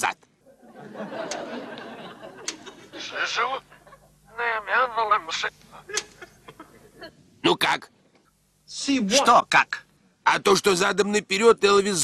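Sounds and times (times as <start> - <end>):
faint steady hum: 0.0 - 12.0
reversed man's speech: 8.7 - 12.0.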